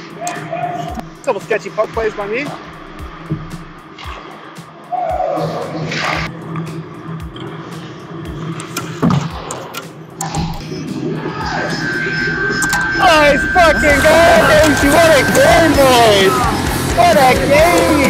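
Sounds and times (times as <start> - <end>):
distant shouts: 0.0 - 1.0, 4.9 - 5.8, 11.0 - 18.0
music playing: 0.0 - 18.0
steady high tone: 10.6 - 18.0.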